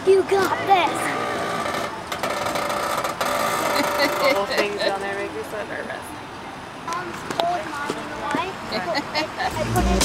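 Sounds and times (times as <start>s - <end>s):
truck engine droning: 8.8s - 10.0s.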